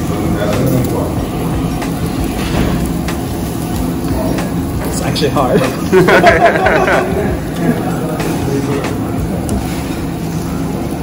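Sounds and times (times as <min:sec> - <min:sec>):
indistinct voices: 0:00.0 - 0:11.0
low restaurant rumble: 0:00.0 - 0:11.0
meat sizzling on grill: 0:00.0 - 0:11.0.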